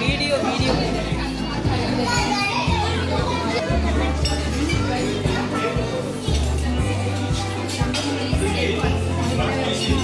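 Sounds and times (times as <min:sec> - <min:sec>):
chatter of children and adults: 0:00.0 - 0:10.0.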